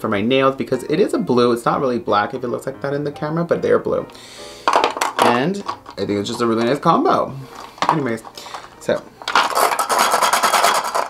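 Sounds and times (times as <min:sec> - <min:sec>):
plastic tubes clattering and scraping: 0:04.6 - 0:11.0.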